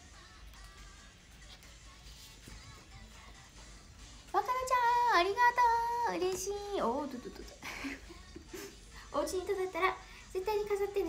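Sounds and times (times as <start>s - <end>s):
woman singing: 0.0s - 11.0s.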